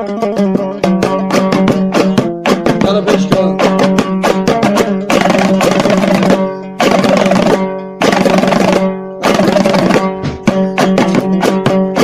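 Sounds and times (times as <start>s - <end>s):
lute strummed rapidly: 0.0s - 12.0s.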